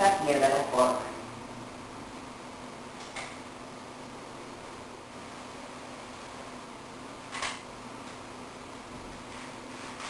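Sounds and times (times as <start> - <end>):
faint hiss and hum: 0.0 - 10.0.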